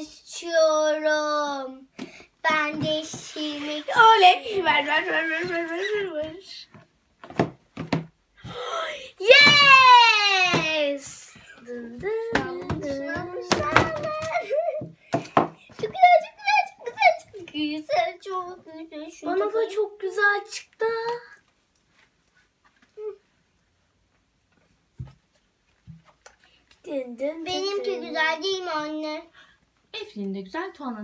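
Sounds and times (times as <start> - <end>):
children's voices: 0.0 - 6.7, 8.5 - 15.0, 15.8 - 21.4, 26.9 - 29.4.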